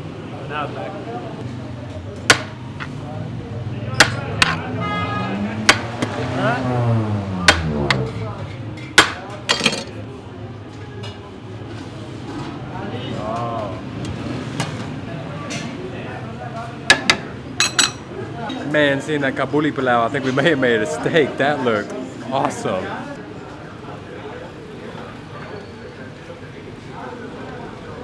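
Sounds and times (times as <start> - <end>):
murmur of voices: 0.0 - 28.0
metal spoon clinking on pot and plates: 9.5 - 10.0, 17.6 - 18.0.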